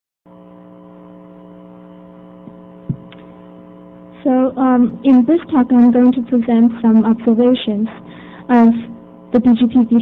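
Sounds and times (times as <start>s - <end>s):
steady electrical hum: 0.3s - 10.0s
short thump: 2.5s - 3.2s.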